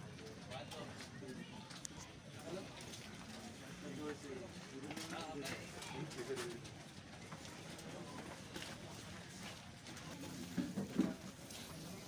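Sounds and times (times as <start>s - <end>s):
soft footsteps of group walking: 0.0s - 12.0s.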